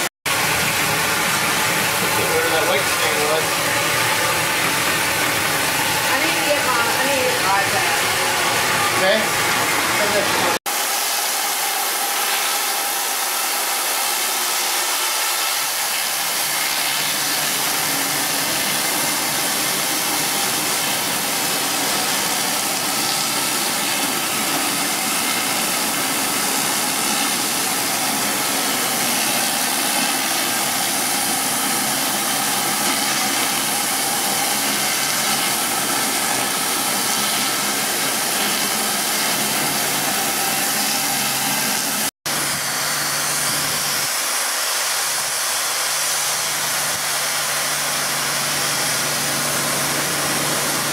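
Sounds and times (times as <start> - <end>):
rotary surface cleaner hissing: 0.3 - 50.9.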